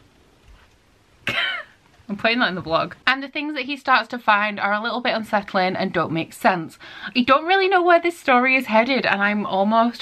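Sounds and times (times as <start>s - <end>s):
person coughing: 1.2s - 1.8s.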